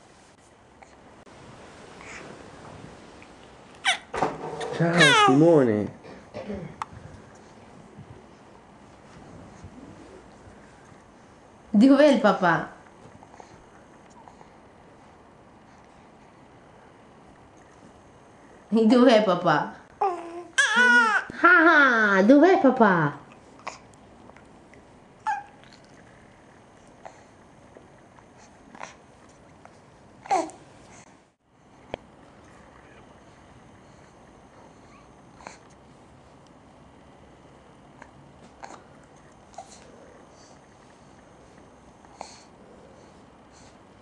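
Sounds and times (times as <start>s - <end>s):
baby squealing: 3.8s - 4.1s, 4.8s - 5.4s, 20.6s - 21.2s.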